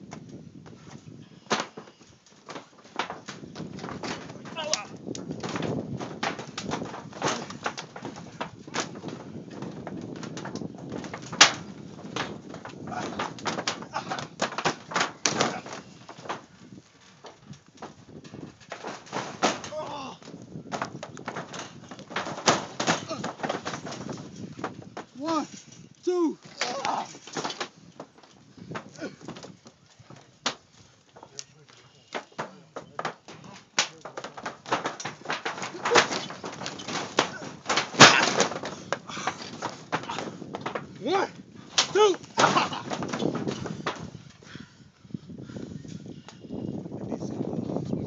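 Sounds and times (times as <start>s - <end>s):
trampoline knocks and rattles: 0.0s - 44.5s
voices: 4.3s - 5.0s, 19.6s - 20.3s, 25.1s - 27.5s, 31.2s - 40.4s, 41.0s - 43.2s.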